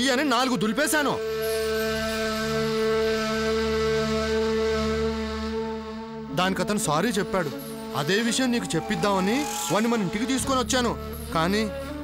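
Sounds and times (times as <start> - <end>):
long held wind instrument note: 1.2 - 12.0.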